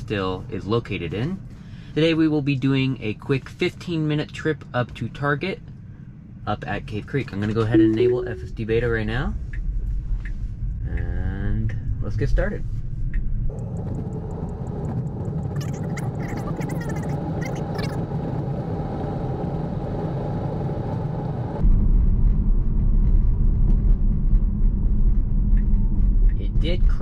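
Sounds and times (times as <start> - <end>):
road and tyre noise: 11.6 - 27.0.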